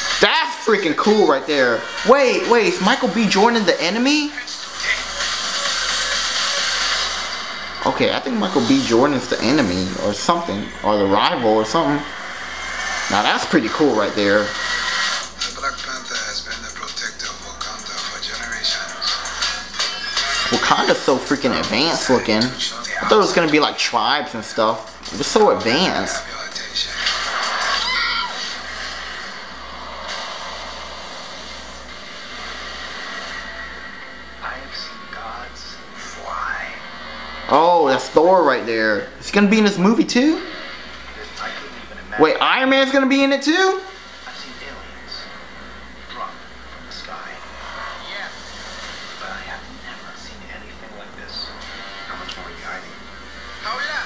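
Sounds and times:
sustained rushing noise: 0.0s - 54.0s.

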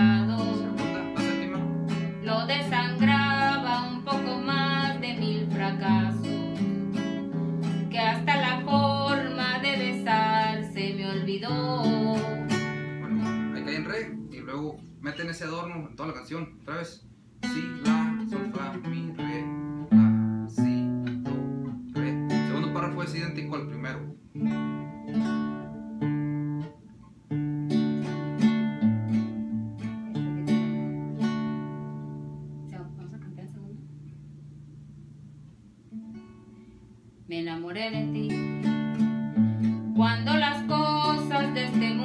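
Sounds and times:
acoustic guitar plucked runs: 0.0s - 15.2s, 17.4s - 36.8s, 37.8s - 42.0s.

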